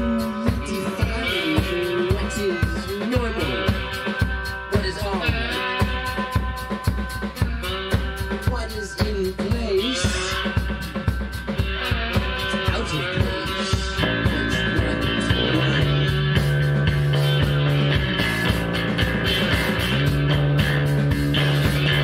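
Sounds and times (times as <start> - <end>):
drums beating steadily: 0.0 - 22.0
electric guitar: 0.0 - 22.0.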